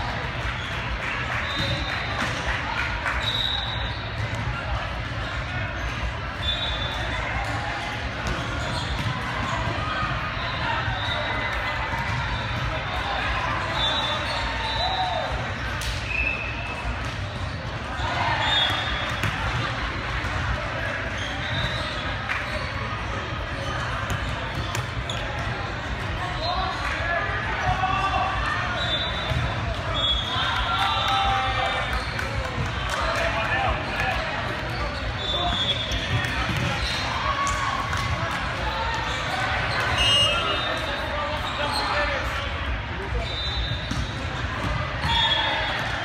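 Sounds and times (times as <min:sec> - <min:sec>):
court shoes squeaking: 0:00.2 - 0:46.0.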